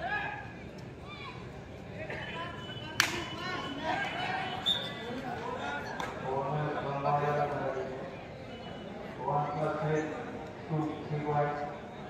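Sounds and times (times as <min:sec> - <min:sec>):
players and spectators voices: 0:00.0 - 0:12.0.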